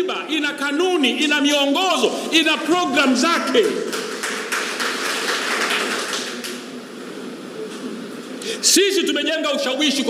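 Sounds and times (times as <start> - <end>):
audience clapping: 3.5 - 6.7.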